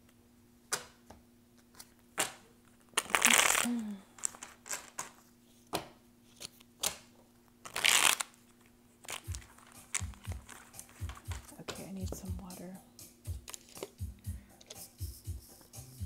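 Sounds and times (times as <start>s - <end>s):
cards being shuffled: 1.6s - 12.2s, 13.3s - 14.0s
cards clicking and tapping: 9.0s - 12.4s, 13.3s - 14.0s.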